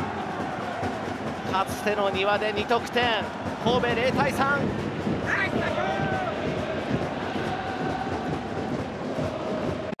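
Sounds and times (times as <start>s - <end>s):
stadium crowd hubbub: 0.0s - 10.0s.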